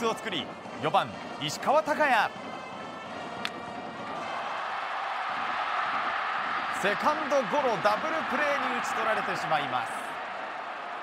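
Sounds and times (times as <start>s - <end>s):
baseball stadium crowd noise: 3.0s - 11.0s.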